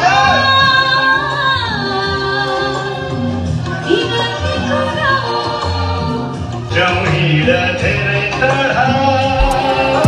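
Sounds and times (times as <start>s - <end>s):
backing music: 0.0s - 10.0s.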